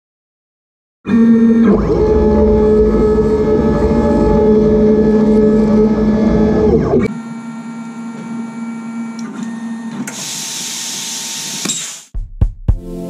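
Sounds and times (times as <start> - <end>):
stepper motors whining: 1.1 - 12.1.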